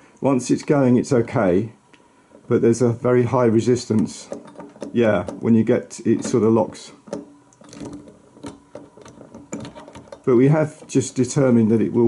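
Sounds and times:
hand-cranked projector clicking: 0:03.7 - 0:12.0.

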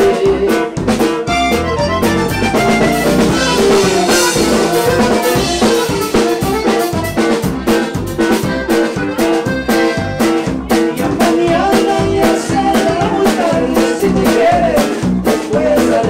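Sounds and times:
button accordion melody: 0:00.0 - 0:15.2
drum kit beat: 0:00.0 - 0:16.0.

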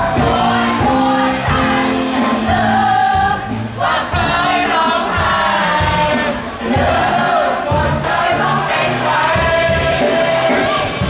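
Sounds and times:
group of people singing along: 0:00.0 - 0:11.0
loud music: 0:00.0 - 0:11.0.

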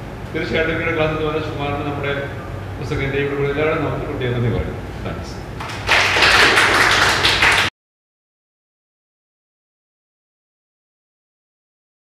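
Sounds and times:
audience applauding: 0:05.6 - 0:07.7.

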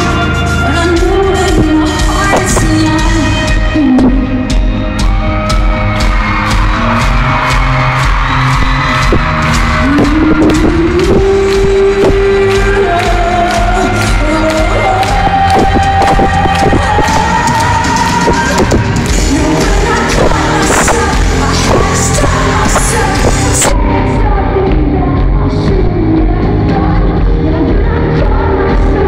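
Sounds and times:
live rock band playing: 0:00.0 - 0:29.0
steady drum beat: 0:00.3 - 0:29.0.

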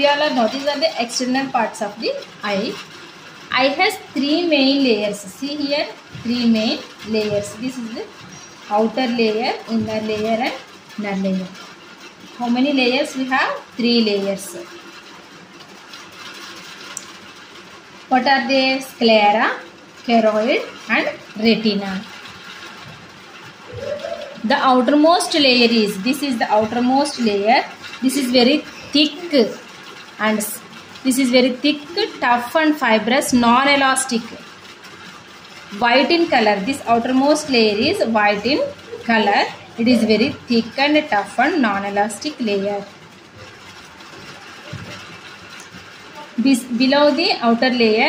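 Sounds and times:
low background noise: 0:00.0 - 0:48.0
steady background noise: 0:00.0 - 0:48.0.

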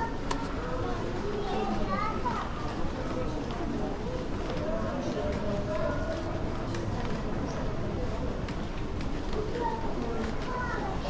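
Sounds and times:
child's high voice: 0:00.0 - 0:02.6, 0:09.6 - 0:11.0.

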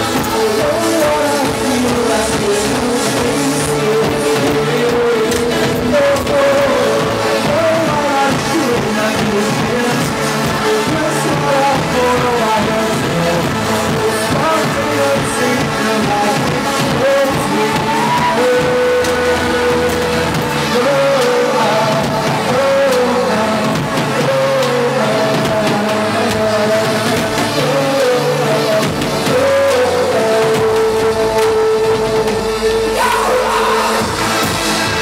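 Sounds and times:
live electronic dance-pop music: 0:00.0 - 0:35.0.

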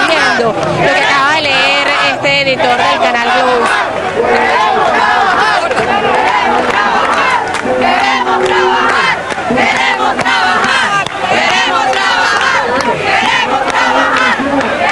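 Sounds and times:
large crowd shouting: 0:00.0 - 0:14.9.

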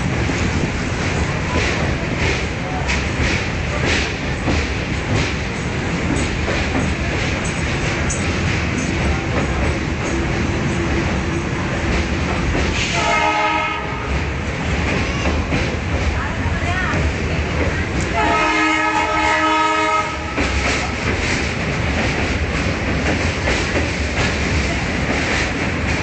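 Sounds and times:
rail joint clicks: 0:00.0 - 0:26.0
train wheels rumbling on rails: 0:00.0 - 0:26.0
train horn: 0:12.8 - 0:14.3, 0:18.1 - 0:20.8.

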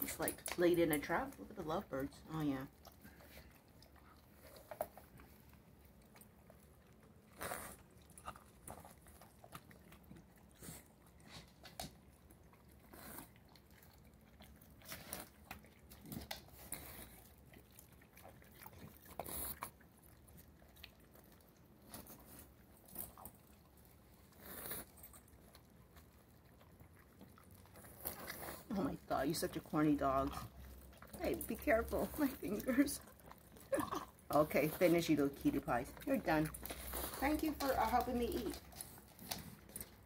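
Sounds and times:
dogs crunching corn cob: 0:00.0 - 0:40.0.

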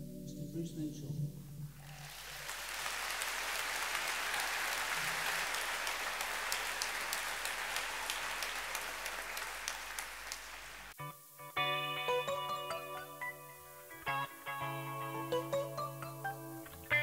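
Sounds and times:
audience applauding: 0:01.8 - 0:11.0.

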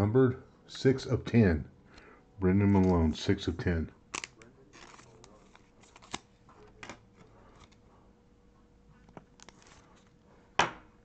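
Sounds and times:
rustle of card and plastic: 0:04.1 - 0:07.8, 0:09.1 - 0:10.2.

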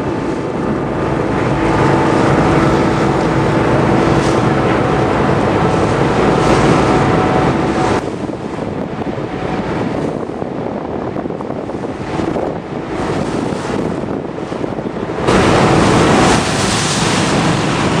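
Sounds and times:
water rushing along hull: 0:00.0 - 0:18.0
wind buffeting microphone: 0:00.0 - 0:18.0.

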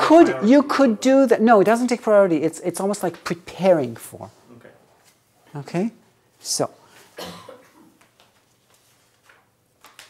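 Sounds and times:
person coughing: 0:07.2 - 0:08.0.

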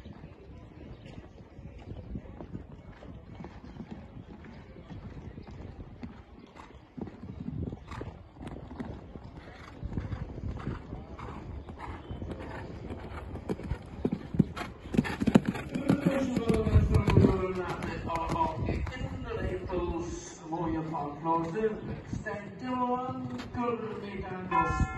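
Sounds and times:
horse hoofbeats on sand: 0:00.0 - 0:24.9.

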